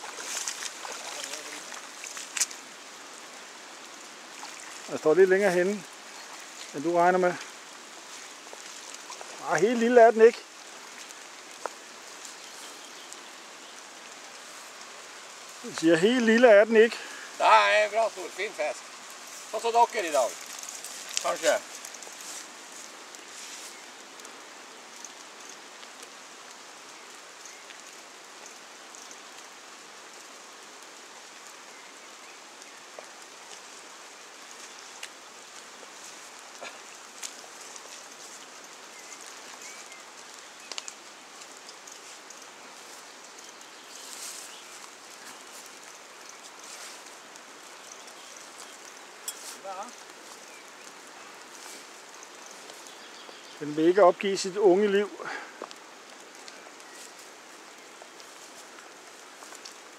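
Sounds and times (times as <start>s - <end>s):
fast-flowing river rushing: 0.0s - 5.0s
faint clicks and ticks: 36.5s - 42.6s.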